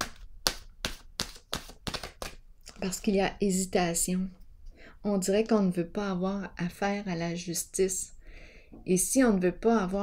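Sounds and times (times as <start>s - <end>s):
cards being shuffled: 0.0s - 2.9s.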